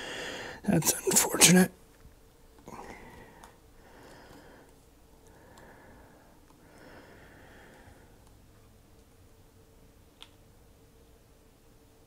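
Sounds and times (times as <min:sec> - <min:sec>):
soft breathing through nose: 0:00.0 - 0:00.6, 0:02.7 - 0:08.3.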